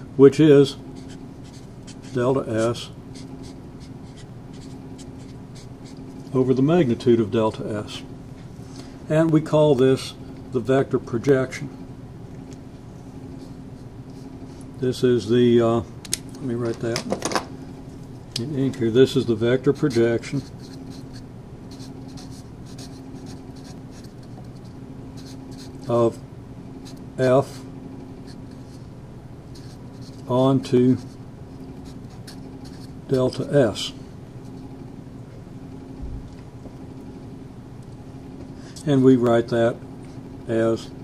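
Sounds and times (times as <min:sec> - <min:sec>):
marker scratching on paper: 0:01.0 - 0:06.0, 0:19.6 - 0:25.9, 0:29.5 - 0:30.3, 0:31.0 - 0:33.0.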